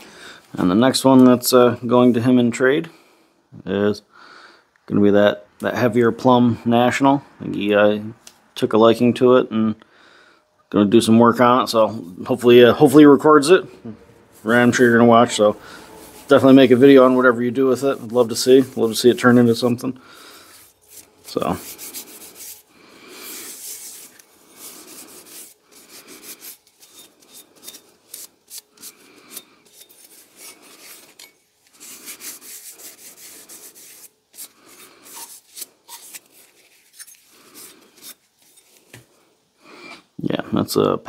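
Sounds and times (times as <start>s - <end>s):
cloth rag wiping metal axe head: 11.4s - 39.0s.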